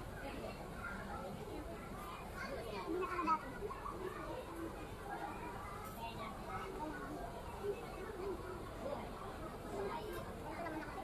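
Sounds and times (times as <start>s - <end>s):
background chatter of voices: 0.0s - 11.0s.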